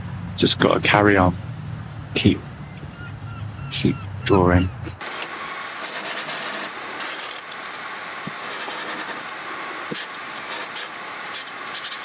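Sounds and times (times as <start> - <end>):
marker scratching on paper: 8.4 - 9.3.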